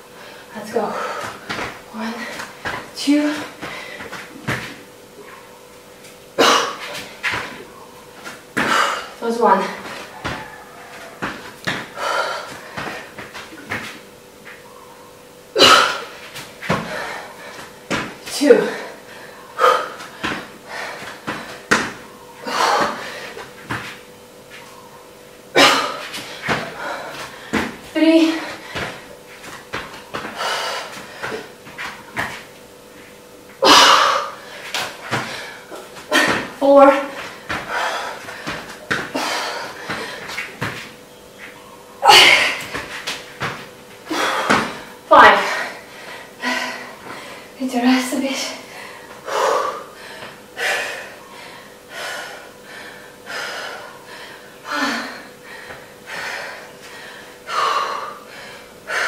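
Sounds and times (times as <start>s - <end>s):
woman breathing hard: 0.0s - 2.6s, 3.6s - 4.3s, 8.6s - 9.2s, 11.8s - 13.2s, 16.8s - 17.9s, 18.6s - 21.8s, 22.4s - 23.6s, 25.6s - 29.2s, 30.2s - 31.6s, 33.6s - 36.6s, 37.2s - 40.5s, 44.0s - 47.6s, 48.6s - 59.0s
feet thudding on exercise mat: 0.7s - 5.0s, 6.1s - 14.7s, 15.6s - 24.8s, 25.6s - 45.8s.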